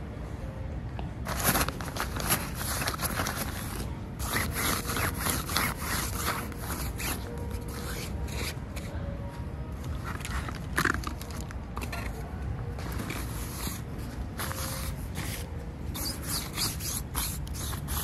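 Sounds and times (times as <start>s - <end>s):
faint background music: 0.0s - 18.0s
fingers scratching fabric: 14.5s - 18.0s.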